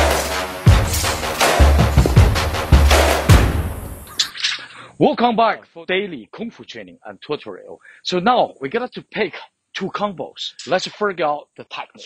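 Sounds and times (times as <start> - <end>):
music with heavy drum beats: 0.0 - 4.0.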